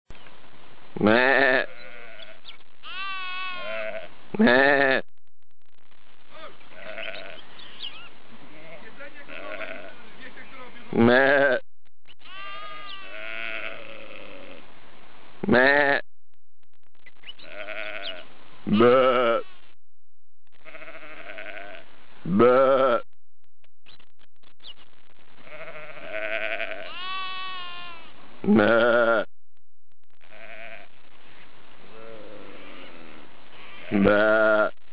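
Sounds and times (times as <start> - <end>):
sheep bleating: 1.0 - 5.0, 6.3 - 10.1, 10.9 - 11.6, 12.2 - 14.6, 15.4 - 16.0, 17.4 - 19.4, 20.6 - 23.0, 25.4 - 29.3, 30.3 - 30.9, 31.9 - 34.8
faint high chirps: 6.8 - 8.2.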